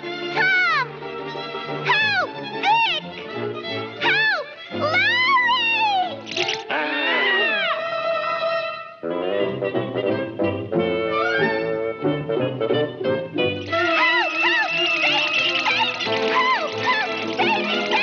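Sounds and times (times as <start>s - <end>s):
orchestral cartoon score: 0.0s - 18.0s.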